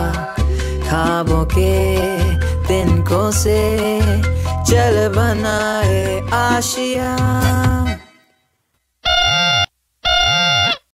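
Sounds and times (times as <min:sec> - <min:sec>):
short swooping electronic tones: 0:09.0 - 0:10.8.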